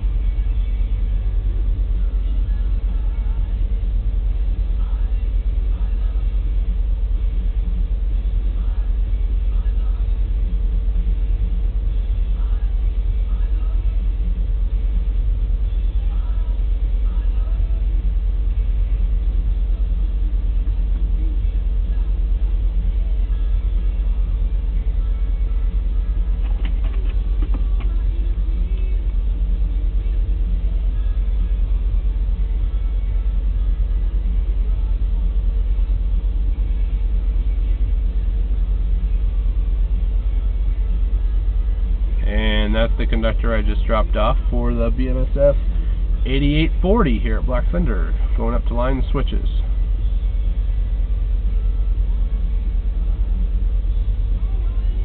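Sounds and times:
faint constant hum: 0.0 - 55.0.

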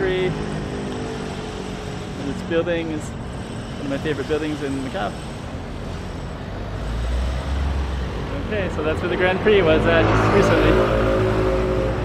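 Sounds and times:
traffic noise: 0.0 - 12.0
car driving past: 9.0 - 12.0.

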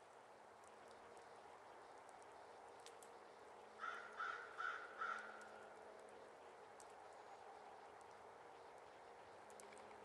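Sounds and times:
faint woodland background: 0.0 - 10.0
crow cawing: 3.8 - 5.5.

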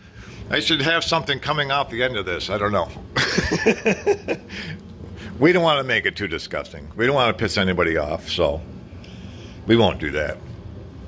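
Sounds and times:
man laughing: 3.2 - 4.8.

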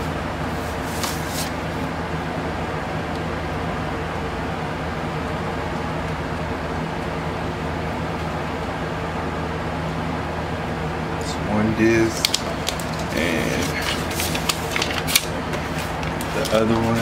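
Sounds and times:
electric fans whirring: 0.0 - 17.0.

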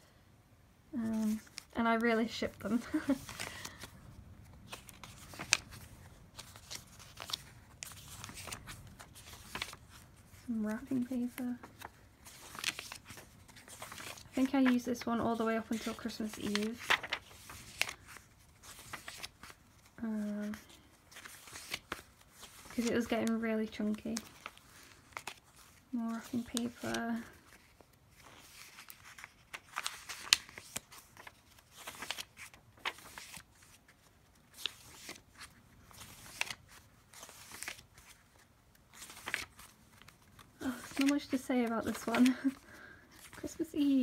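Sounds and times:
paper pages turning: 1.0 - 44.0.

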